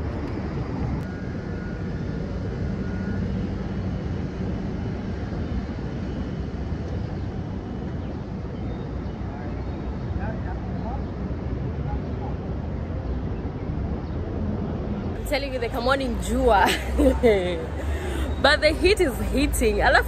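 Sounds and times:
city street traffic: 0.0s - 3.9s, 6.9s - 20.0s.

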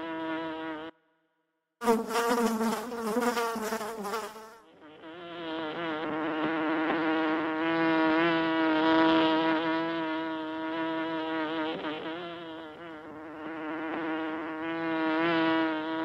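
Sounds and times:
honey bees buzzing: 1.8s - 16.0s.

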